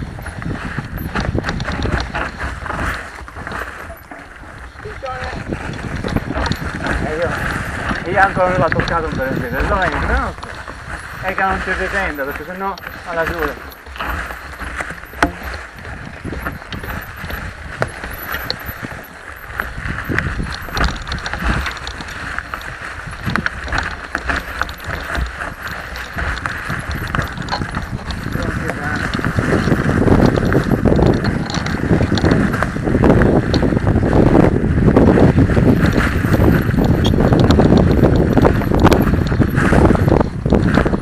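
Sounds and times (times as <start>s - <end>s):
mountain bike rattling over rocks: 0.0s - 41.0s.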